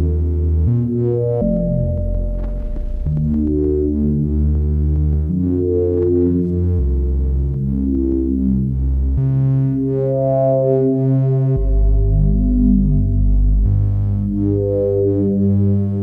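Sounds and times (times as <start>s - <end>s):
sustained synth bass notes: 0.0s - 16.0s
shifting higher synth tones: 1.4s - 4.5s.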